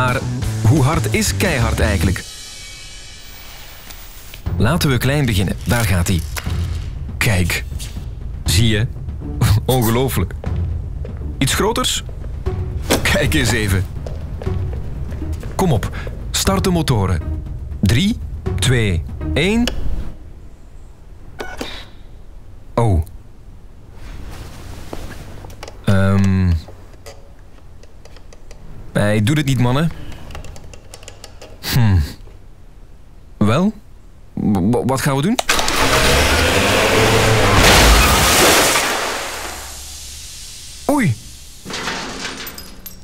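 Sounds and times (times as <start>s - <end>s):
rattling debris: 4.8s - 8.0s, 35.5s - 40.5s, 41.4s - 43.0s
toy car electric motor whirr: 35.5s - 37.6s
van crashing into a wall: 35.5s - 39.9s, 41.7s - 42.8s.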